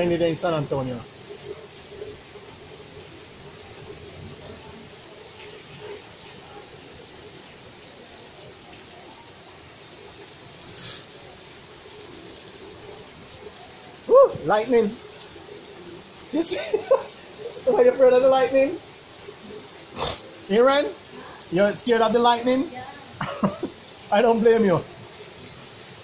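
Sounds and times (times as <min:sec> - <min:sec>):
heavy rain pouring: 0:00.0 - 0:26.0.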